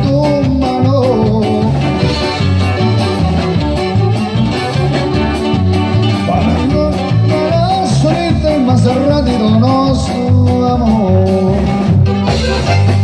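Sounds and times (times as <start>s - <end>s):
accordion: 0.0s - 13.0s
live band playing: 0.0s - 13.0s
saxophone: 1.7s - 8.6s, 11.5s - 13.0s.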